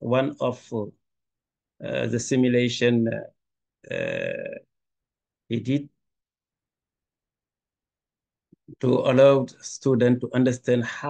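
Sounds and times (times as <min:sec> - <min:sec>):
man speaking: 0:00.0 - 0:00.9, 0:01.8 - 0:03.3, 0:03.9 - 0:04.6, 0:05.5 - 0:05.9, 0:08.7 - 0:11.0.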